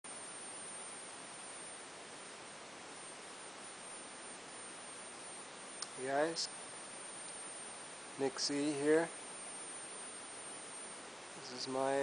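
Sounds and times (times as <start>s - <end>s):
faint high-pitched ringing tone: 0.0s - 12.0s
steady hiss: 0.1s - 12.0s
small click: 5.8s - 6.0s.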